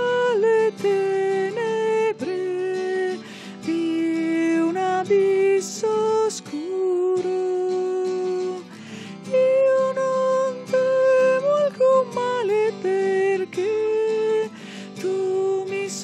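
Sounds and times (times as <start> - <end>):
acoustic guitar: 0.0 - 16.0
person singing a hymn: 0.0 - 16.0.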